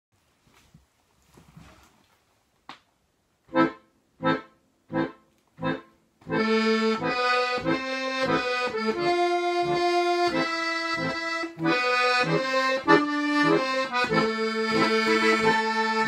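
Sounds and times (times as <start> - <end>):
faint rustling: 0.2 - 2.7
accordion chords and melody: 3.5 - 16.0.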